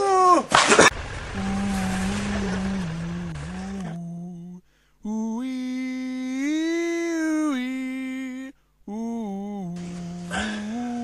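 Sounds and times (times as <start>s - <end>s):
rush of outdoor noise: 0.6s - 4.0s
person humming a slow tune: 1.4s - 11.0s.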